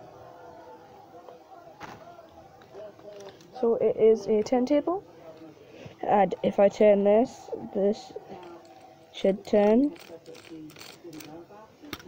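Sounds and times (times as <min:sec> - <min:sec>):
plastic toy turntable clicks: 0:08.4 - 0:12.0.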